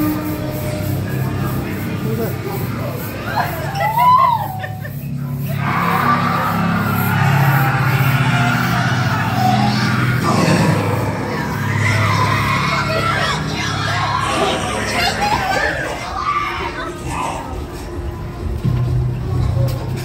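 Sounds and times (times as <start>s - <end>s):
horror soundtrack music: 0.0s - 20.0s
people screaming: 3.0s - 17.8s.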